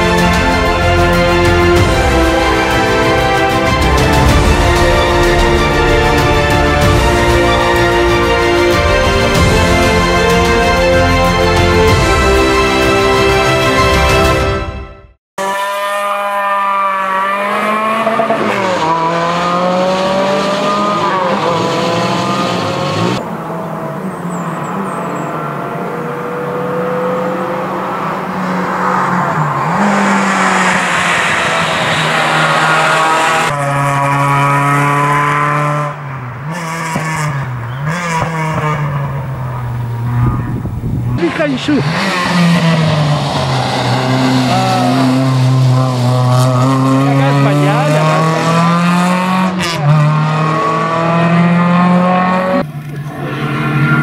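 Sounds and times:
race car engine revving hard: 15.4s - 54.0s.

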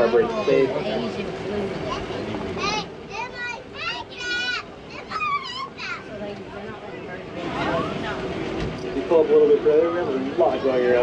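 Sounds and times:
children's excited cries: 3.2s - 6.1s.

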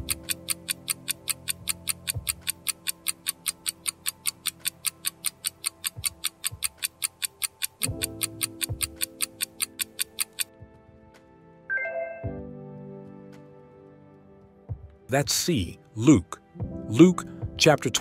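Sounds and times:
countdown timer ticking: 0.0s - 10.6s
soft background music: 0.0s - 18.0s.

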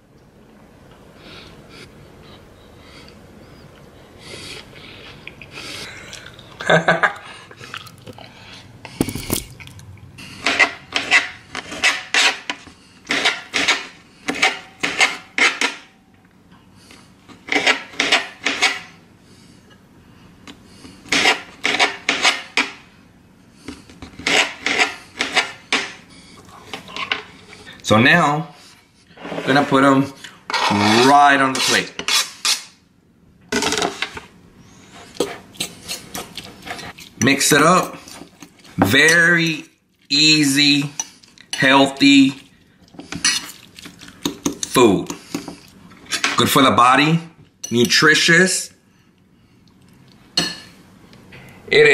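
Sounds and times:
metal utensil scraping ceramic bowl: 10.4s - 15.8s, 30.5s - 32.6s.

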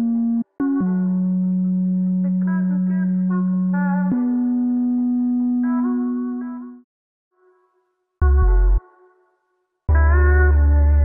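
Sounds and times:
bass note: 8.2s - 8.8s, 9.9s - 11.0s.

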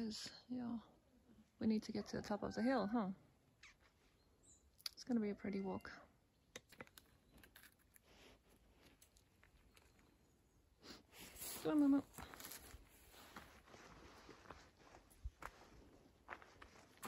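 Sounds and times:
footsteps on leafy dirt path: 11.1s - 17.0s.

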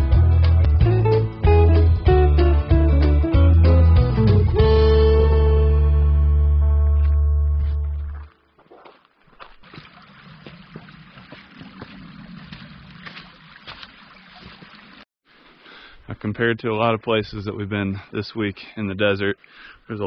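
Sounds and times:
guitar chord: 0.8s - 7.8s
footsteps on gravel: 7.6s - 14.7s.

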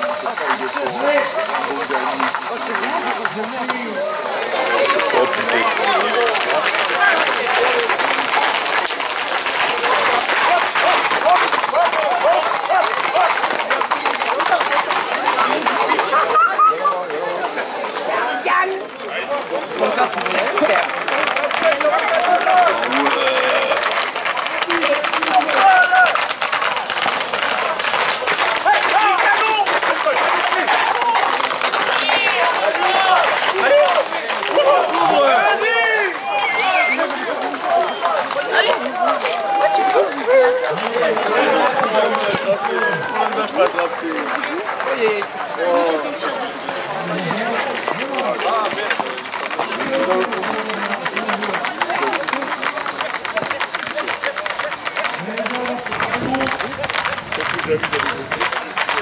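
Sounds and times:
crowd shouting: 0.0s - 59.0s
horse hooves clattering on tarmac: 0.0s - 59.0s
people running: 0.0s - 59.0s.

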